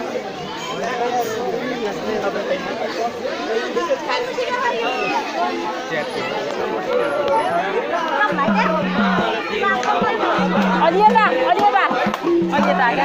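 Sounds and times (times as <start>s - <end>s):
crowd chatter: 0.0s - 13.0s.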